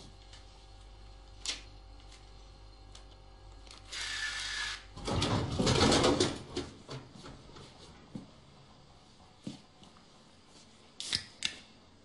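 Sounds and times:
bill acceptor motor whirr: 3.4s - 5.0s
vending machine rattle and rumble: 4.8s - 8.6s.

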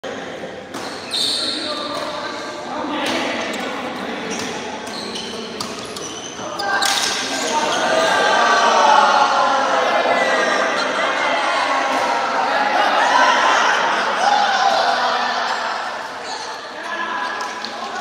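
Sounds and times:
voices shouting: 6.4s - 18.0s.

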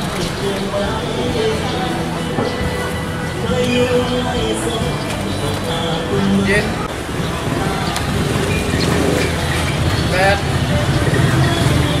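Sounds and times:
people talking: 0.0s - 12.0s
traffic rumble: 0.0s - 12.0s.

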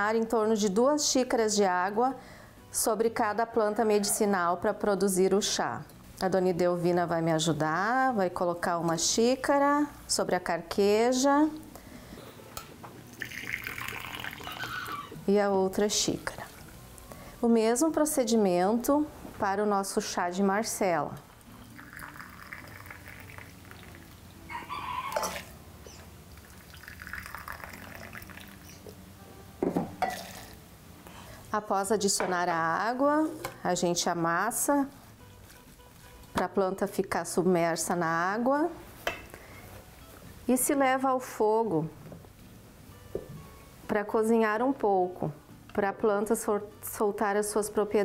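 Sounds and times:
water pouring into mug: 13.1s - 15.1s, 21.6s - 25.5s, 26.4s - 28.8s, 30.1s - 30.6s
water poured over dried flowers: 13.2s - 14.9s, 21.7s - 24.2s, 26.4s - 28.8s.

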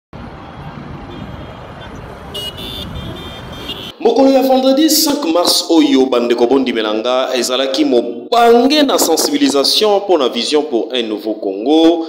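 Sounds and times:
street traffic rumble: 0.1s - 5.6s.

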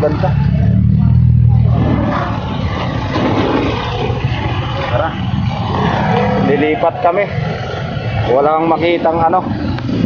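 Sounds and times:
voices: 0.0s - 9.9s
passing vehicle engines: 0.0s - 10.0s
road noise: 0.0s - 10.0s.

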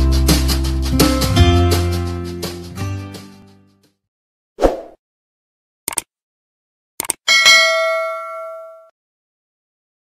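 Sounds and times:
notification bell ding: 7.3s - 8.9s.

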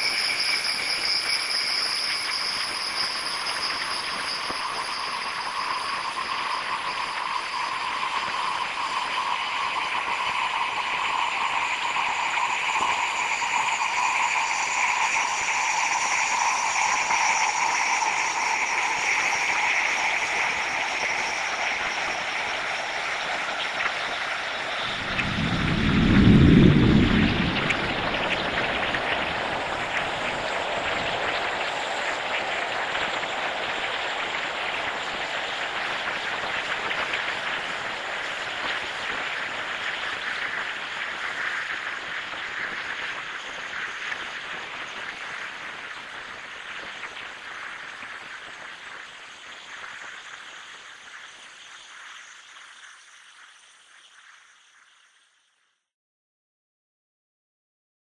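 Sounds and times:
dense hissing noise with sinking bands: 0.0s - 55.8s
deep low swell: 24.6s - 30.3s.

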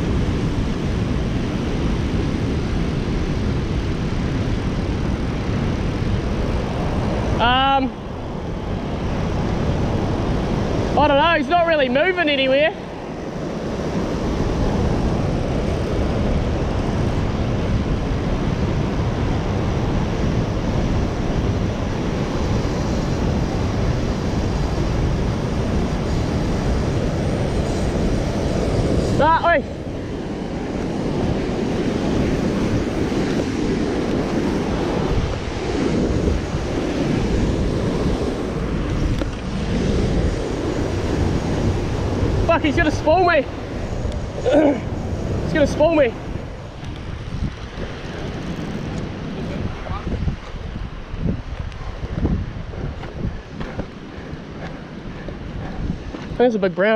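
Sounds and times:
white water rushing: 0.0s - 56.9s
wind buffeting microphone: 0.0s - 56.9s.

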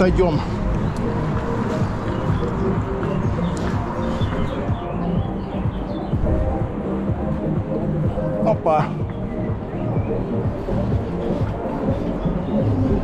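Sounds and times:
music playing: 0.0s - 13.0s.

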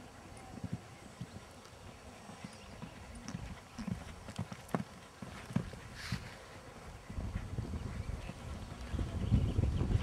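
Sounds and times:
horse hoofbeats on sand: 0.4s - 6.3s.

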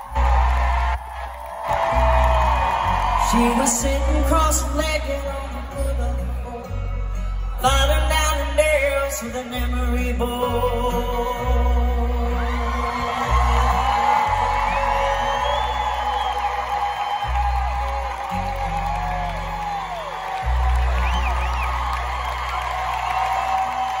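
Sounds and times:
crowd cheering and whooping: 0.0s - 5.7s, 10.7s - 24.0s
live country band playing: 0.0s - 24.0s.

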